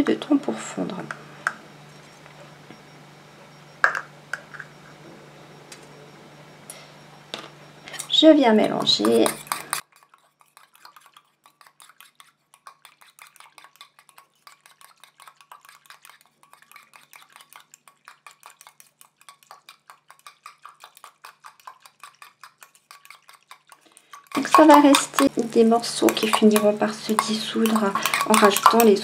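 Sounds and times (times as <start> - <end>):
whisk ticking against metal bowl: 7.8 - 29.0.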